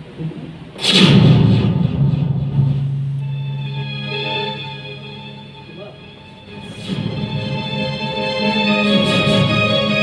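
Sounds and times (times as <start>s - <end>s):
loud crash: 0.8s - 3.2s.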